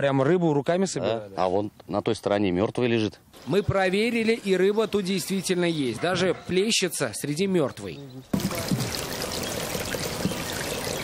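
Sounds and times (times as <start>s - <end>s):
pond water splashing: 8.3s - 11.0s.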